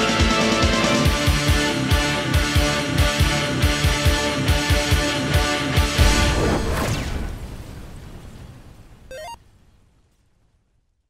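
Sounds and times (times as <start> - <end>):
music: 0.0 - 6.3
chiptune video-game blip: 9.1 - 9.4.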